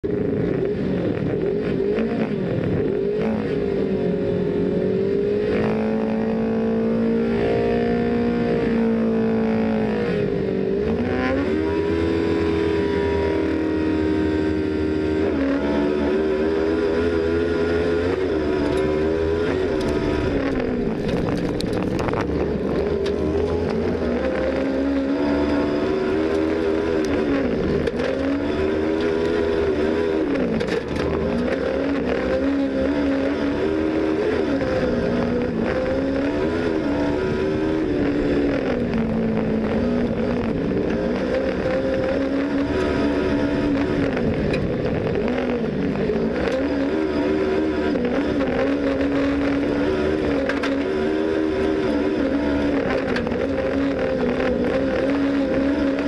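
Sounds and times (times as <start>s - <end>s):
racing engine revving: 0.0s - 56.0s.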